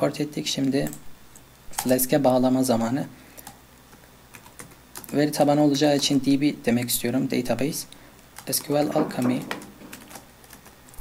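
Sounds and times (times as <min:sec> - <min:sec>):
computer keyboard typing: 0:01.7 - 0:02.0, 0:03.4 - 0:06.2, 0:08.4 - 0:11.0.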